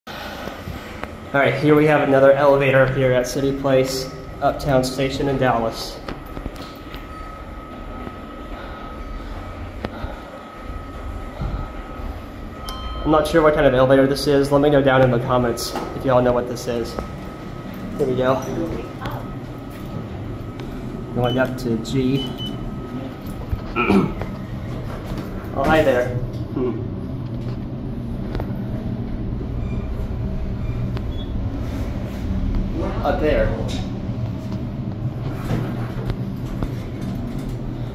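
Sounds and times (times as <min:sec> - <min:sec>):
faint high hum: 0:00.1 - 0:37.9
low mechanical rumble: 0:00.1 - 0:37.9.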